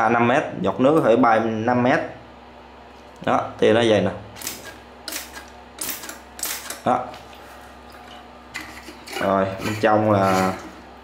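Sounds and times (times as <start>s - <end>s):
pump sprayer clicks and squirts: 4.4s - 6.9s.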